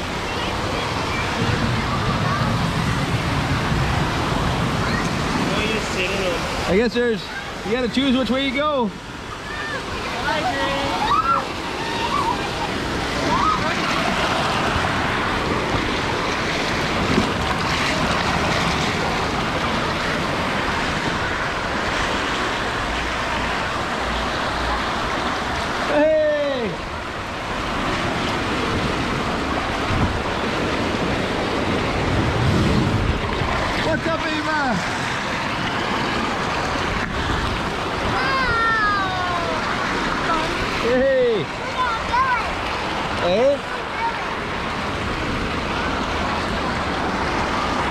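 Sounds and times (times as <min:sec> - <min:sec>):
waterfall rushing: 0:00.0 - 0:47.9
voices calling out: 0:08.9 - 0:14.7.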